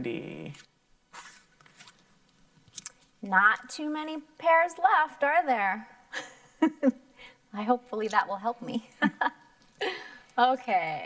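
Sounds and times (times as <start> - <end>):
paper card rustling in plastic: 1.1 - 2.1.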